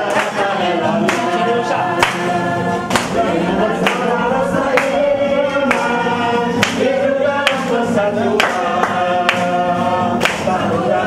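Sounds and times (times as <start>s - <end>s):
hand claps: 0.0s - 5.0s, 5.6s - 6.0s, 6.6s - 7.8s, 8.4s - 10.7s
group singing a hymn: 0.0s - 11.0s.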